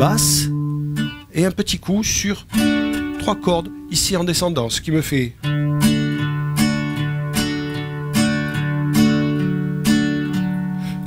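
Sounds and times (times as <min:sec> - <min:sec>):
classical guitar boom-chick pattern: 0:00.0 - 0:11.0.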